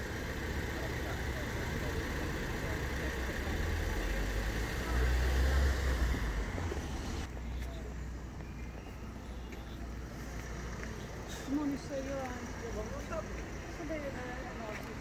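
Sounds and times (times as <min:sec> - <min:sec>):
traffic hum: 0:00.0 - 0:15.0
vehicle engine and tyre rumble: 0:00.0 - 0:15.0.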